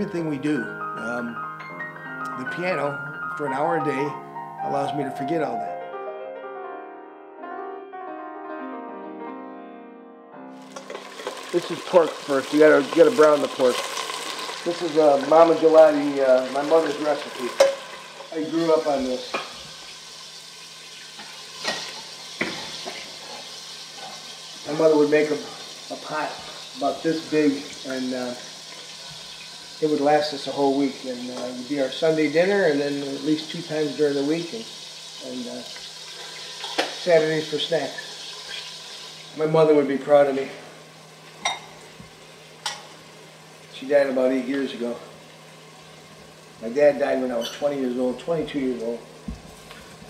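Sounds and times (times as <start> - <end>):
meat sizzling in oil: 10.6 - 50.0
pot cooking hiss: 10.6 - 50.0.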